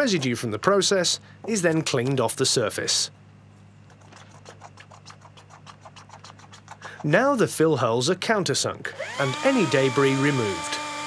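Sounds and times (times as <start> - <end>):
low steady hum: 0.0 - 11.0
scraper scratching pipe casing: 3.9 - 7.4.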